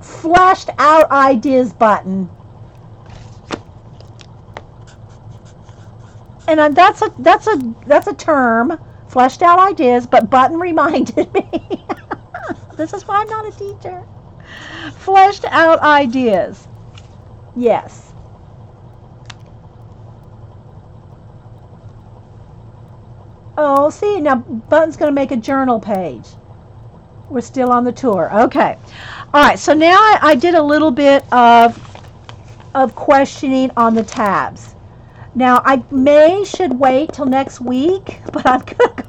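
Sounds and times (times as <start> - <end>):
steady low hum: 0.0 - 39.0
light ticks: 0.4 - 39.0.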